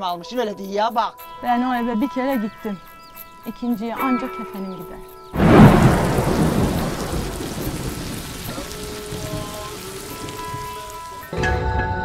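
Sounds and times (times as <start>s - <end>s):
faint held musical tones: 0.0s - 5.4s
heavy rain pouring: 5.4s - 11.3s
thunder rumble: 5.4s - 11.3s.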